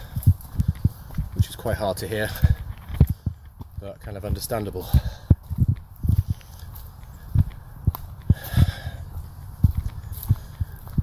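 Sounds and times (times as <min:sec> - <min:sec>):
footsteps walking: 0:00.0 - 0:11.0.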